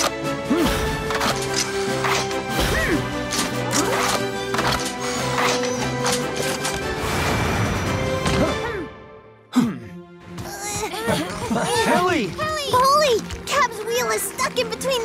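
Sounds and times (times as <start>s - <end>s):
upbeat background music: 0.0s - 8.8s, 9.5s - 15.0s
sharp mechanical clanks: 3.2s - 6.8s.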